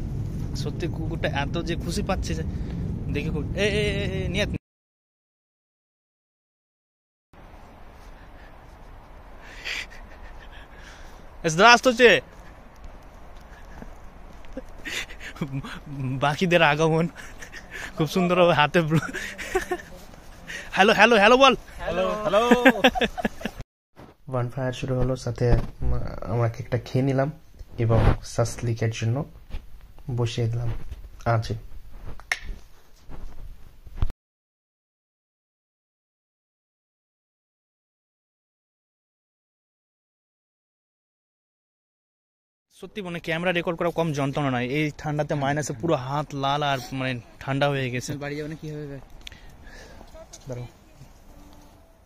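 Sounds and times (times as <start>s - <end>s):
man speaking: 15.2s - 23.0s, 42.8s - 49.0s, 50.4s - 50.8s.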